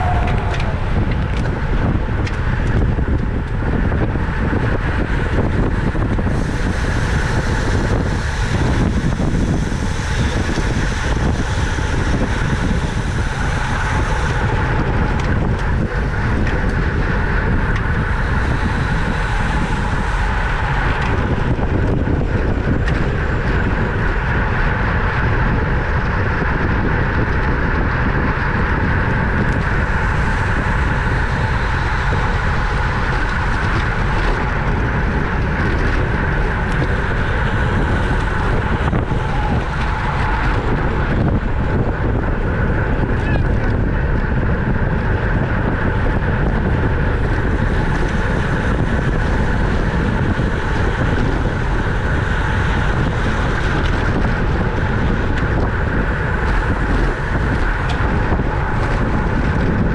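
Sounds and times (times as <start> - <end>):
bicycle tyre road noise: 0.0 - 59.9
wind rush over microphone: 0.0 - 59.9.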